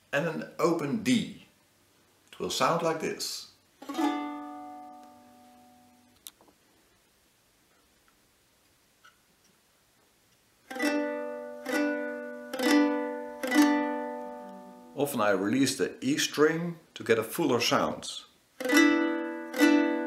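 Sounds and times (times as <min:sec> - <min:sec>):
lyre chord strummed: 0:03.8 - 0:06.1, 0:10.7 - 0:15.0, 0:18.6 - 0:20.0.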